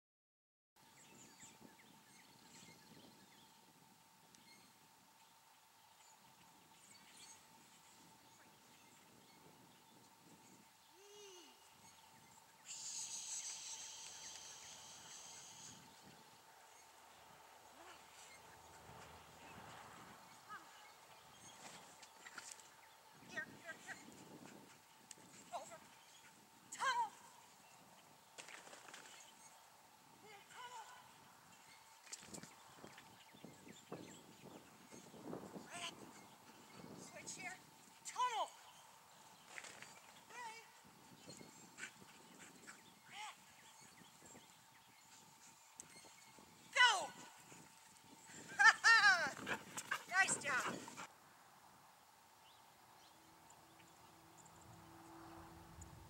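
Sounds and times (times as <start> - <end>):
person shouting high-pitched cues: 46.7 - 47.2, 50.1 - 50.7.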